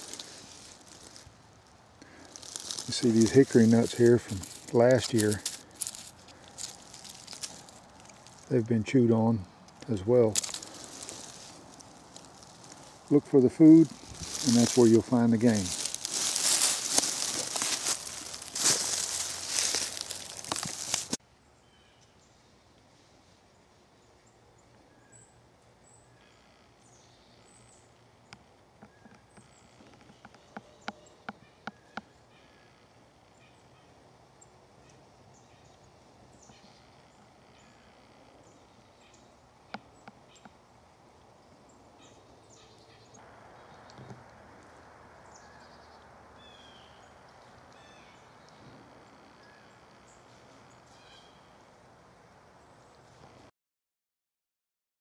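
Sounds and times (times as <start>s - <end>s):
dry leaves rustling: 0.0s - 22.0s, 49.4s - 51.8s
turkeys calling: 2.0s - 21.2s.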